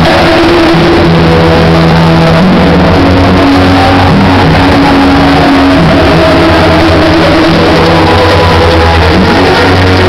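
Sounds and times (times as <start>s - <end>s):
loud electronic dance music: 0.0s - 10.0s.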